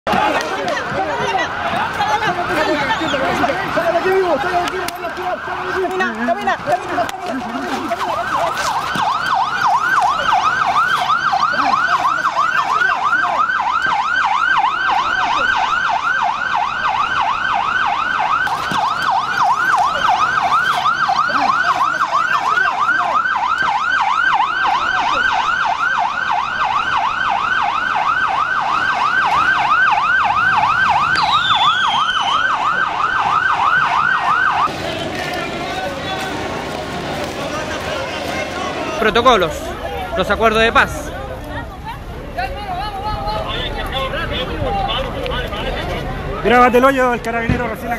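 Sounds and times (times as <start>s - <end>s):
vehicle siren yelping: 0.1s - 47.3s.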